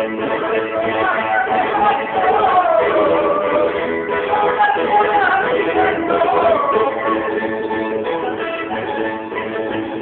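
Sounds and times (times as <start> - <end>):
plucked string accompaniment: 0.0 - 10.0.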